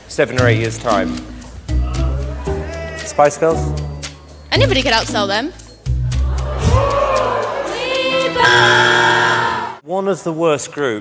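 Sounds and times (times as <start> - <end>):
women singing in harmony: 7.5 - 9.7.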